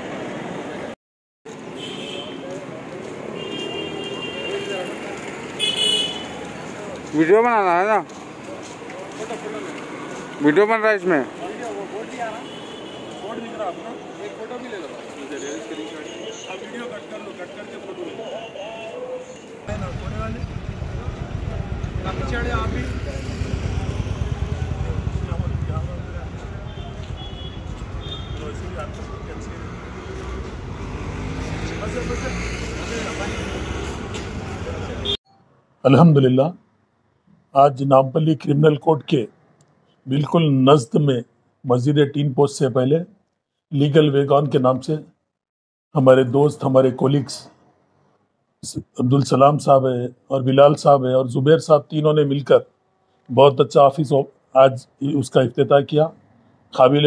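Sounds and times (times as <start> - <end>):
street traffic: 0.0 - 57.0
car horns honking: 3.4 - 5.0, 5.6 - 6.4, 26.5 - 28.8
vehicle engine running: 19.7 - 28.0.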